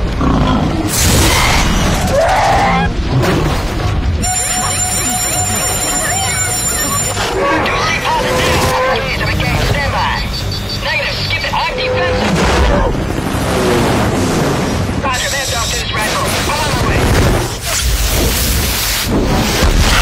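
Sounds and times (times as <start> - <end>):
action film music: 0.0 - 20.0
voices crying out: 4.2 - 12.3
explosions: 16.0 - 20.0.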